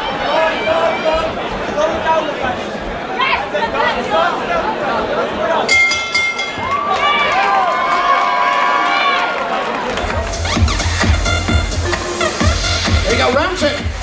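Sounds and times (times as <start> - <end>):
crowd chatter and shouting: 0.0 - 14.0
dance music: 9.9 - 14.0
heavy dance bass beat: 10.1 - 14.0.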